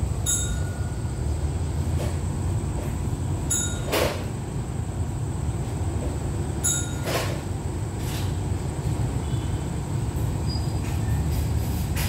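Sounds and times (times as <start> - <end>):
short high ringing tone: 0.2 - 1.2, 3.5 - 3.9.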